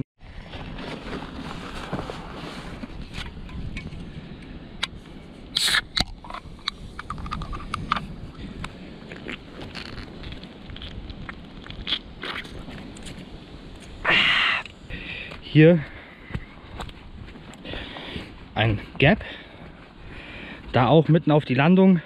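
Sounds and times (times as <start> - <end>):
backpack rummaging on dry leaves: 0.4 - 3.5
drink can cracked open with hiss: 5.6 - 6.2.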